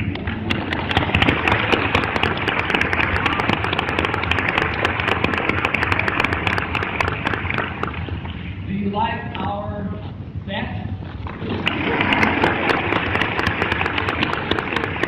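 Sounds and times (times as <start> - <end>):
audience applauding: 0.0 - 8.4, 11.3 - 15.0.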